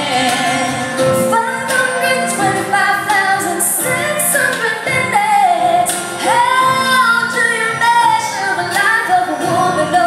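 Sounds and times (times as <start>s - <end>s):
band playing: 0.0s - 10.0s
woman singing: 0.0s - 10.0s.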